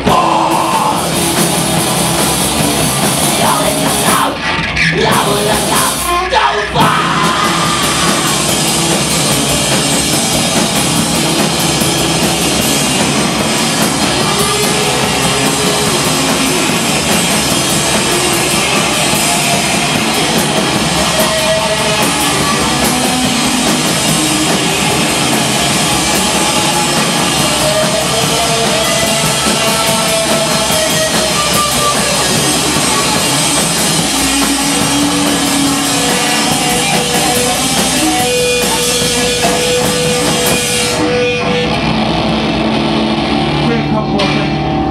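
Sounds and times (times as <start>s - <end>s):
drum kit: 0.0s - 44.9s
electric guitars: 0.0s - 44.9s.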